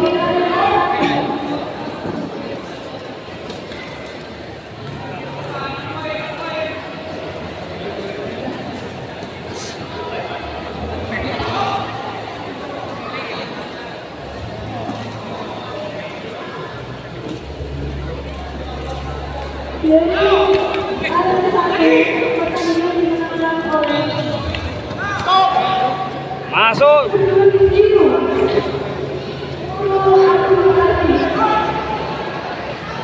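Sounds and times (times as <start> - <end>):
crowd hubbub: 0.0 - 33.0.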